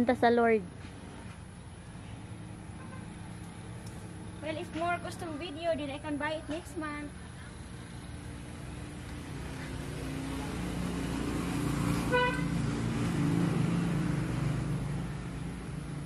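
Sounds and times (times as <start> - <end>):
vehicle engine rumble: 0.0 - 16.0
short horn toot: 12.1 - 12.5.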